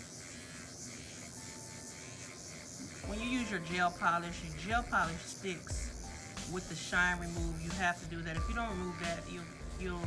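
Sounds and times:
electric nail drill buffing: 0.0s - 10.0s.

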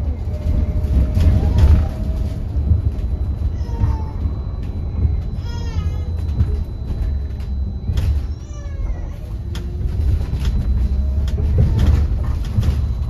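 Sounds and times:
body rattles and knocks: 0.0s - 13.0s
bus road and tyre rumble: 0.0s - 13.0s.

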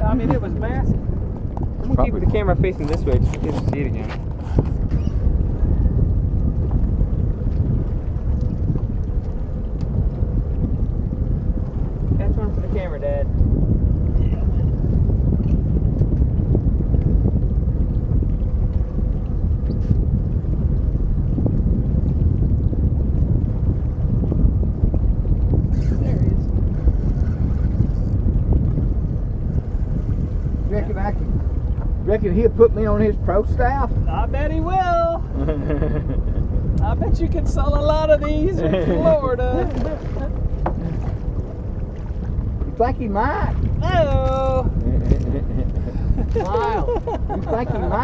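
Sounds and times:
water washing against boat hull: 0.0s - 48.0s
wind rumbling on microphone: 0.0s - 48.0s.

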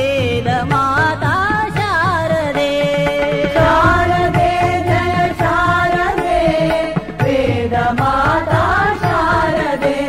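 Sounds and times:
person singing devotional melody: 0.0s - 10.0s.

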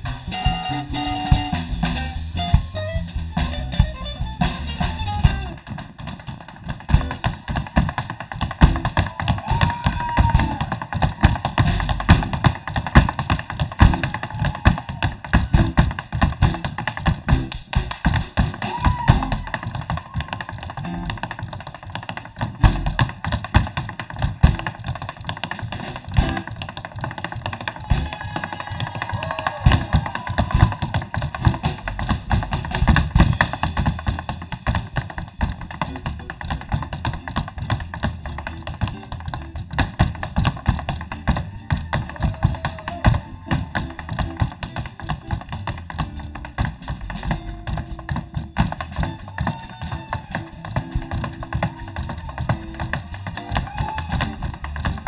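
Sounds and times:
tap shoes striking stage floor: 2.6s - 55.0s.

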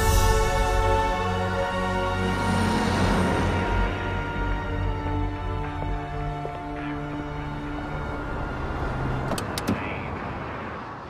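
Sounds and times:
background music: 0.0s - 10.1s
car door handle clicks: 9.3s - 9.9s.

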